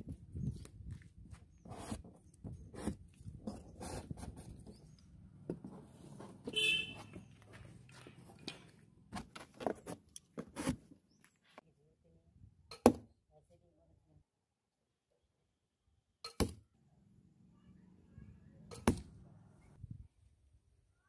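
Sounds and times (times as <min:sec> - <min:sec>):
horn toot: 0:06.5 - 0:07.2.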